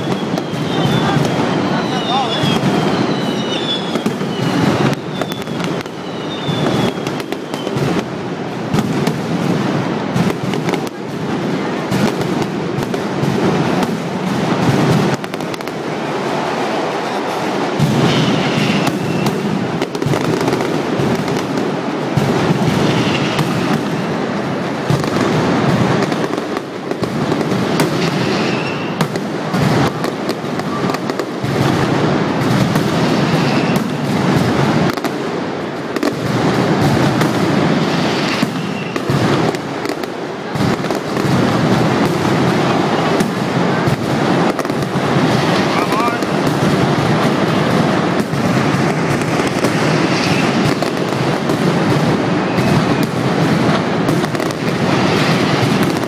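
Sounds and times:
firecrackers cracking and banging: 0.0s - 56.0s.

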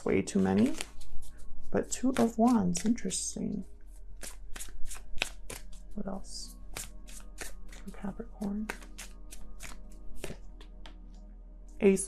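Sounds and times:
cards being shuffled: 0.0s - 3.2s, 4.2s - 11.0s.

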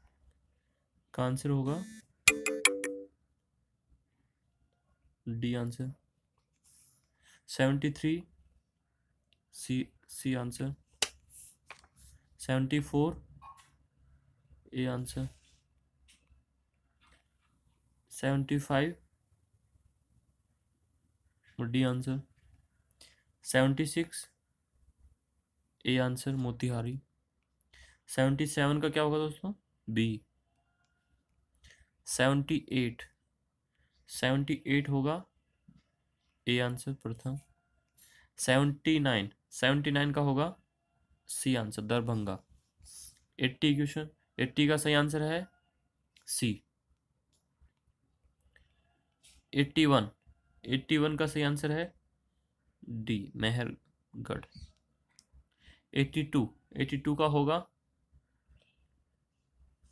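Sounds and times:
man saying a letter: 1.2s - 2.0s, 14.7s - 15.4s, 21.6s - 22.3s, 52.8s - 54.5s
smartphone notification chime: 1.8s - 3.1s.

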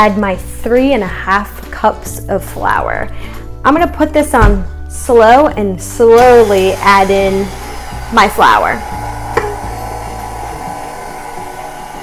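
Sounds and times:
stand mixer motor hum: 6.2s - 12.0s.

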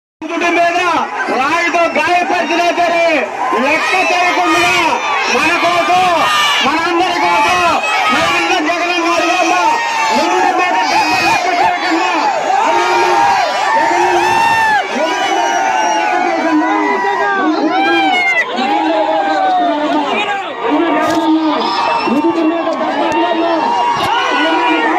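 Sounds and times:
crowd shouting and cheering: 0.2s - 24.9s.

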